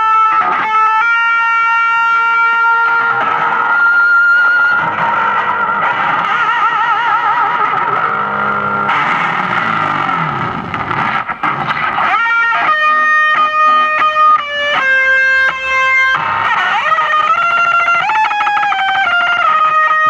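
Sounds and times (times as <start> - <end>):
distorted electric guitar: 0.0 - 20.0
guitar string scraping: 4.4 - 15.2.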